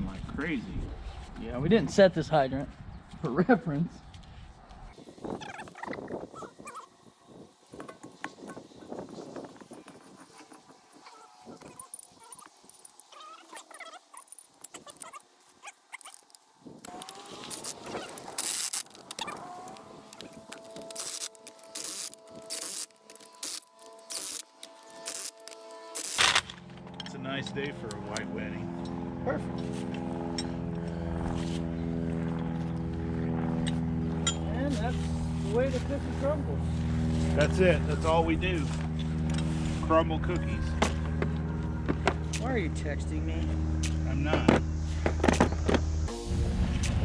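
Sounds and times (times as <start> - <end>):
cordless impact wrench bursts: 16.9 - 26.6.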